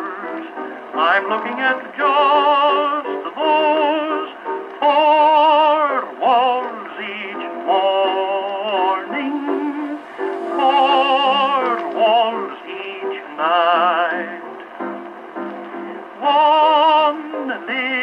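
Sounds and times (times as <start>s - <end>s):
tenor singing with piano: 0.0s - 15.0s, 15.7s - 18.0s.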